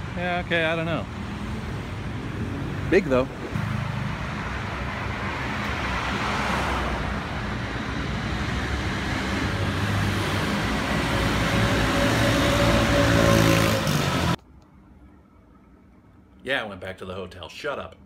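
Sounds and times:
cars passing: 0.0s - 14.4s
motor scooters passing: 1.3s - 14.4s.

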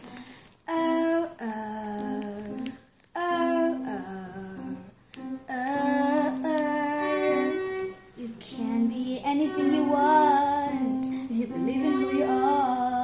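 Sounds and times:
breaths: 0.0s - 0.6s, 11.0s - 11.4s
girl singing unaccompanied: 0.0s - 13.0s.

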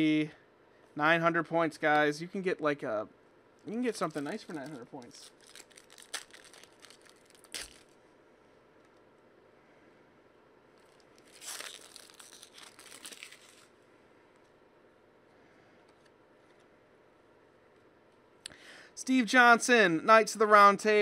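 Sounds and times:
foil wrapper crinkling and tearing: 3.9s - 8.0s, 10.8s - 13.7s.

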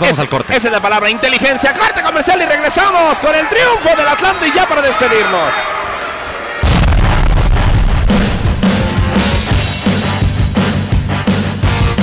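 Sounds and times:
loud booming hit: 6.6s - 9.9s
heavy rock music: 6.6s - 12.0s
pounding drum beat: 6.6s - 12.0s.

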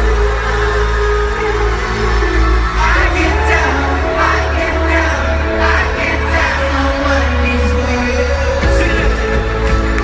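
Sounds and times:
loud live pop band music: 0.0s - 10.0s.

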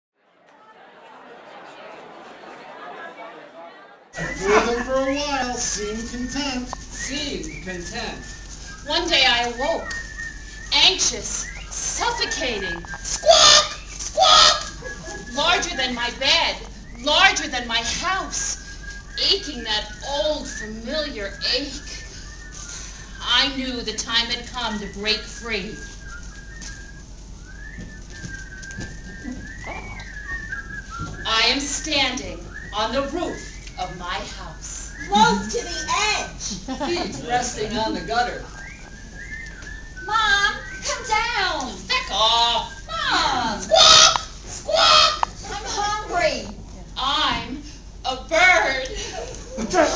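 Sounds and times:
murmur of many people talking: 0.2s - 22.3s, 28.6s - 41.2s
high whistle: 6.0s - 15.7s, 17.9s - 23.2s, 25.7s - 36.2s, 37.6s - 45.2s.

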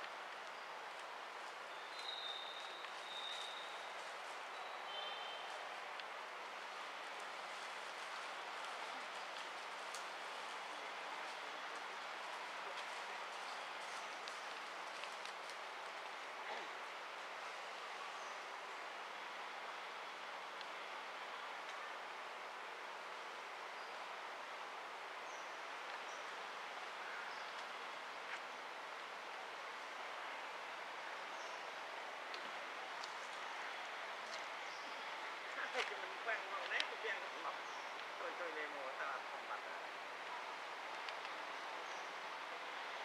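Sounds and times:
forest ambience hiss: 0.0s - 43.0s
faint high bird chirps: 1.8s - 3.8s.

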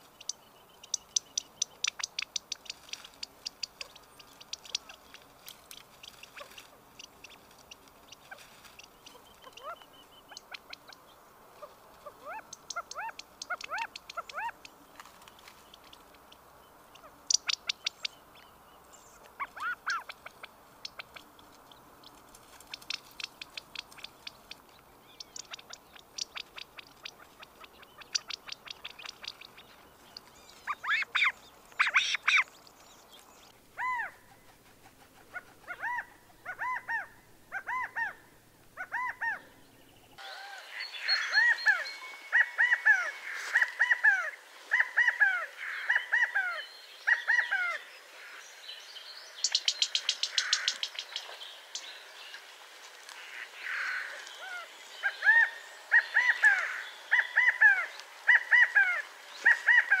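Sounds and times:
quail chicks peeping: 0.0s - 38.2s, 49.4s - 52.4s, 53.1s - 60.0s.

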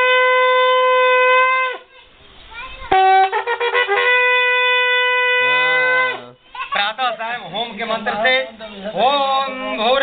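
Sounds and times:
brass horn long blast: 0.0s - 1.8s, 2.9s - 6.3s.

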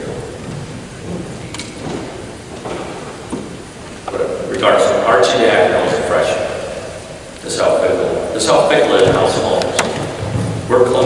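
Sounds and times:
room noise hiss: 0.0s - 11.0s
man lecturing in echoing hall: 4.0s - 11.0s.

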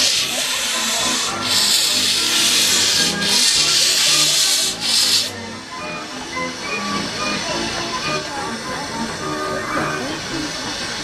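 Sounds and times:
steam locomotive hissing steam: 0.0s - 11.0s.

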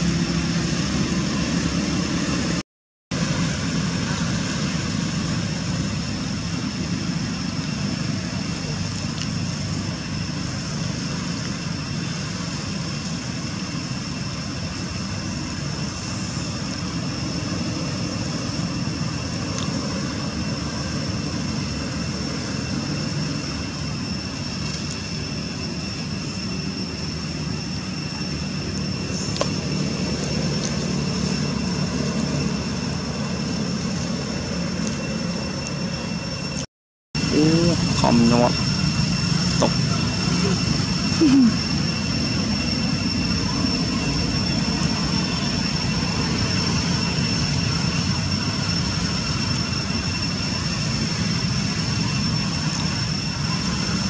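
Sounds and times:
high-pitched whine: 0.0s - 54.0s.

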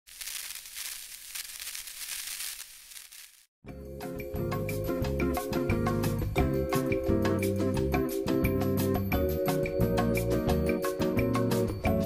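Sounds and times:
crackling static glitch: 0.1s - 3.5s.

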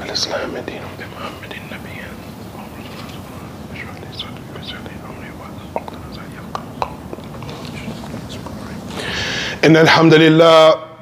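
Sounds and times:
person whispering: 0.7s - 9.3s.

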